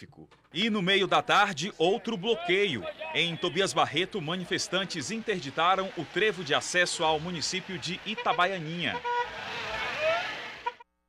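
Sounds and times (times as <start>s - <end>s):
road noise: 0.6s - 10.8s
car horn toot: 8.0s - 10.8s.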